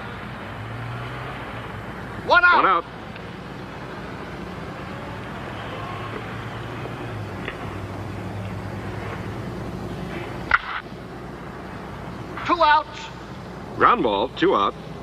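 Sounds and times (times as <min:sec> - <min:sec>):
film soundtrack hiss and hum: 0:00.0 - 0:15.0.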